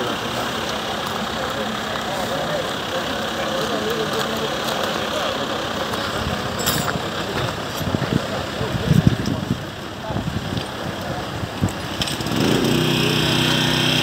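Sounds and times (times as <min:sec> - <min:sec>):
engine idling: 0:00.0 - 0:14.0
people talking: 0:00.0 - 0:14.0.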